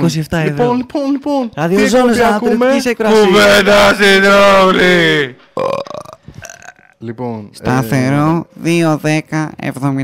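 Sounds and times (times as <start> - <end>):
long low burp-like vocal sound: 5.6 - 7.0.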